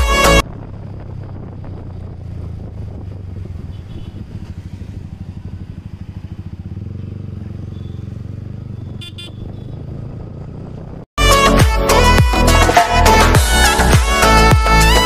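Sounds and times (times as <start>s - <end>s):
motorcycle engine running: 0.0s - 11.1s
vehicle horn toots: 3.6s - 4.4s, 8.7s - 9.8s.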